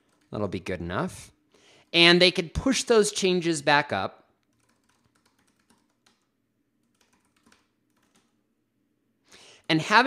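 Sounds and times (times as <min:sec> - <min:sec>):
computer keyboard keystrokes: 0:00.0 - 0:00.3, 0:04.4 - 0:08.4.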